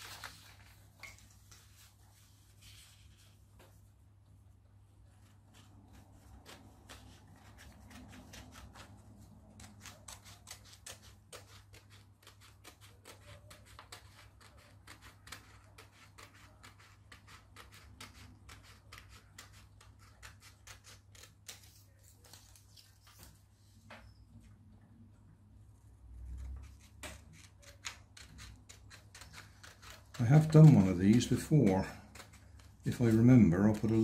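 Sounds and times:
scissors snipping paper: 0:05.9 - 0:23.0, 0:26.3 - 0:34.0.

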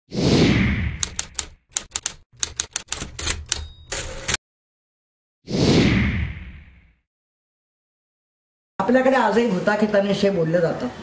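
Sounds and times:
typewriter keystroke clacks: 0:01.0 - 0:04.4
typewriter bell ding: 0:02.9 - 0:04.4.

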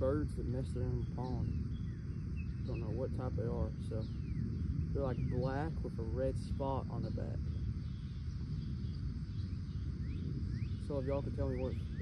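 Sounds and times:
bird chirps: 0:00.0 - 0:12.0
low outdoor rumble: 0:00.0 - 0:12.0.

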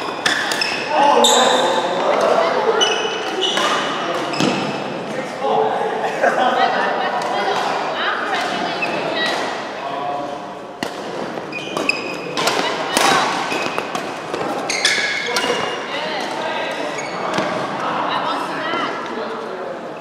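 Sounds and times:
rackets striking shuttlecock: 0:00.0 - 0:00.8, 0:10.8 - 0:17.5
shoes squeaking on court: 0:00.0 - 0:04.9, 0:11.0 - 0:17.7.

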